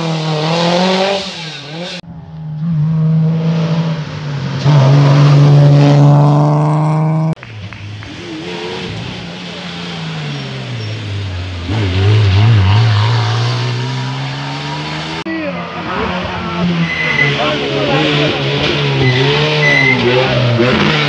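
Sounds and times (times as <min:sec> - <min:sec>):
car engine slowing and accelerating: 0:00.0 - 0:21.0
rally car engine revving: 0:00.0 - 0:21.0.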